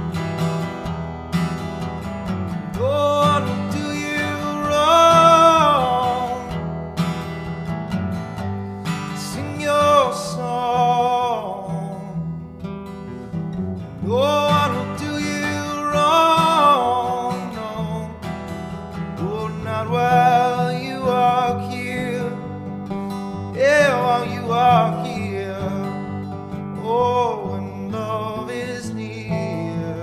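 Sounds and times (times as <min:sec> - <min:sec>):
acoustic guitar folk music: 0:00.0 - 0:30.0.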